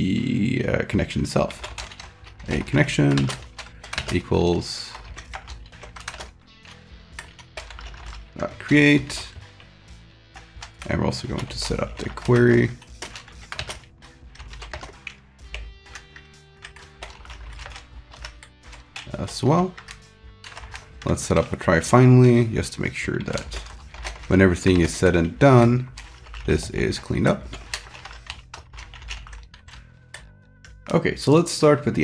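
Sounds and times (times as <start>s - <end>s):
soft background music: 0.0s - 32.0s
typing on computer keyboard: 1.4s - 9.7s, 10.3s - 21.6s, 23.2s - 30.8s.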